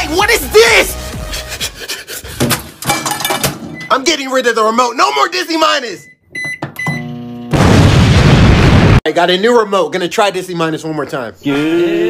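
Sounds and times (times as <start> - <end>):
microwave keypad beeping: 6.0 - 7.4
loud explosion: 7.5 - 9.0.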